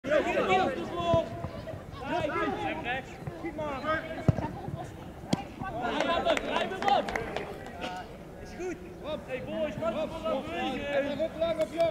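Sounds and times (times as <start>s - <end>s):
players shouting: 0.1s - 4.5s.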